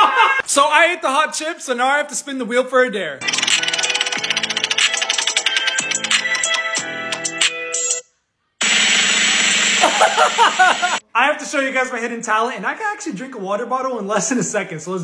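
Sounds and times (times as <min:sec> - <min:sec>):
prize wheel ticking: 0:03.2 - 0:06.6
music: 0:03.2 - 0:08.1.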